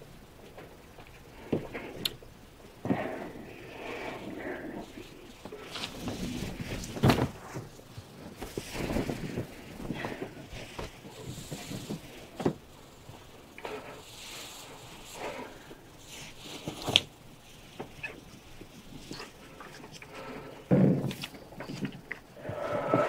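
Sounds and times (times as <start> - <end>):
irregular breathing: 1.0 - 23.0
clothes rustling: 3.8 - 23.0.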